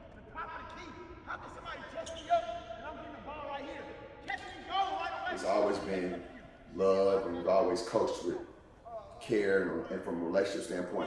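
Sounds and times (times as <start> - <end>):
sneakers squeaking: 0.0 - 5.1.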